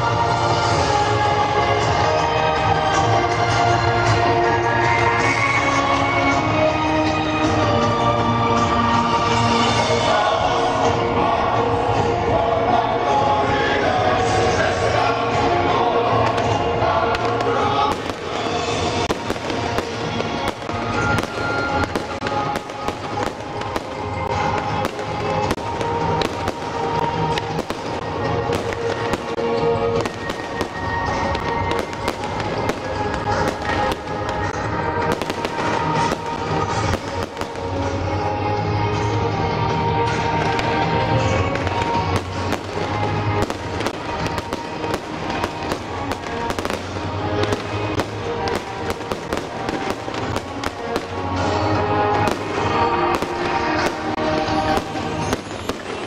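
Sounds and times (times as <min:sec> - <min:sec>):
fireworks banging and crackling: 0:00.0 - 0:56.0
music playing: 0:00.0 - 0:56.0.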